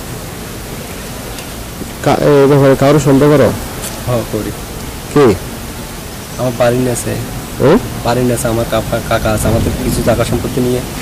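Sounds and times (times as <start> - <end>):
steady background hiss: 0.0 - 11.0
man speaking: 2.0 - 5.4, 6.4 - 11.0.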